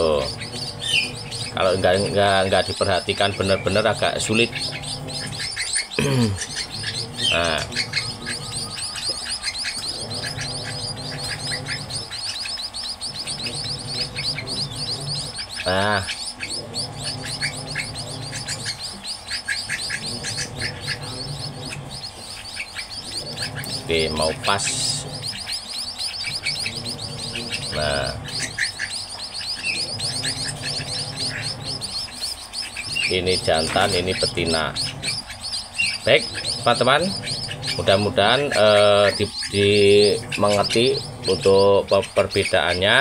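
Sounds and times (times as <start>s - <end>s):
nestlings chirping: 0.0s - 43.0s.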